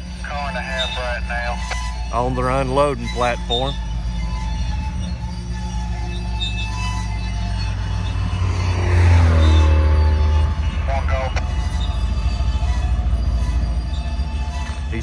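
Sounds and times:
freight train rumbling: 0.0s - 15.0s
road vehicle passing: 0.0s - 15.0s.

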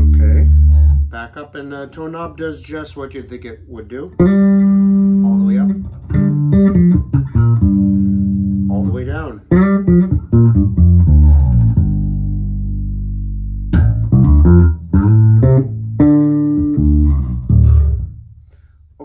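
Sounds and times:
electric bass plucked notes: 0.0s - 1.5s, 4.0s - 18.5s.

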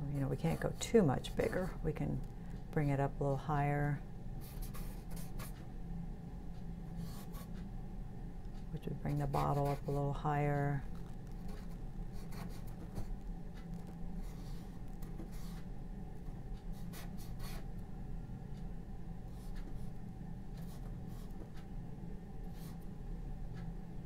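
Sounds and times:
low room hum: 0.0s - 24.0s.

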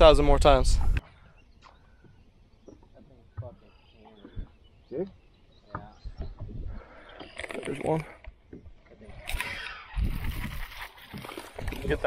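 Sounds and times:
low wind rumble on microphone: 0.0s - 1.0s, 5.8s - 6.9s, 9.0s - 10.8s.

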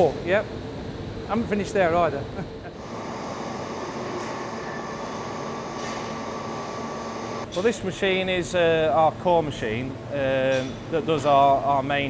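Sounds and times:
laser cutter hissing: 2.8s - 7.5s.

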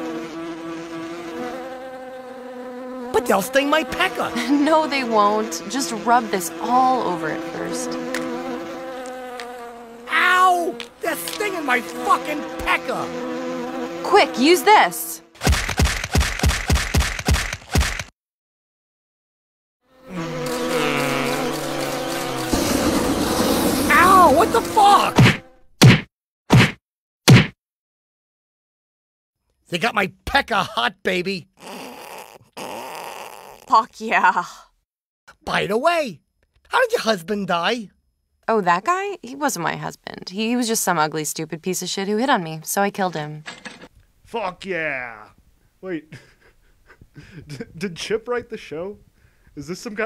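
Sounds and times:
bees buzzing: 0.0s - 15.4s, 19.9s - 25.6s
cartoon whack hits: 15.4s - 18.1s, 25.1s - 27.6s.

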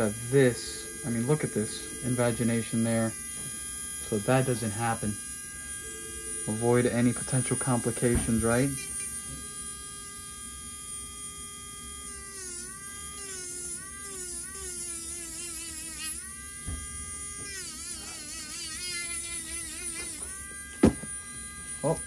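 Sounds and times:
electric nail drill whining: 0.0s - 22.0s
sharp knock: 20.8s - 21.1s.

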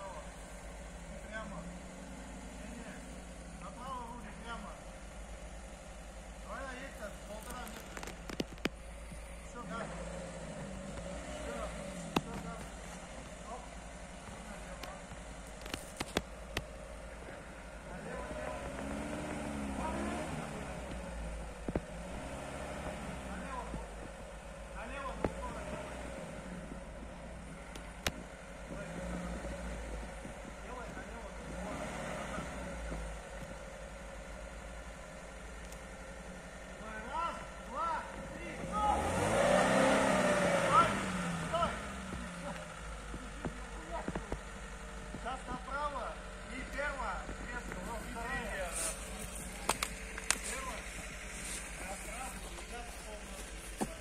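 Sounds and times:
car engine revving: 0.0s - 54.0s
car churning through mud: 6.3s - 26.8s, 27.4s - 33.1s, 36.7s - 54.0s.

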